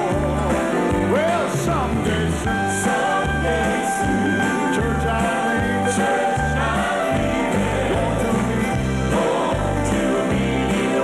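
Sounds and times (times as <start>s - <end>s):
choir singing gospel song: 0.0s - 11.0s
piano accompaniment: 0.0s - 11.0s.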